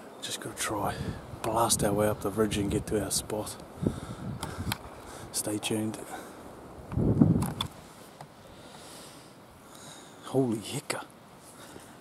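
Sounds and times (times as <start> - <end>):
faint steady hiss: 0.0 - 12.0
rumbling microphone noise: 0.7 - 5.4, 6.5 - 7.9.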